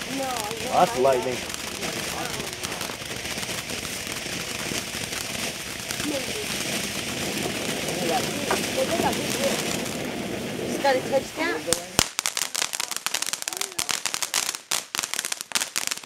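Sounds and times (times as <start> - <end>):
ground fountain firework hissing: 0.0 - 16.0.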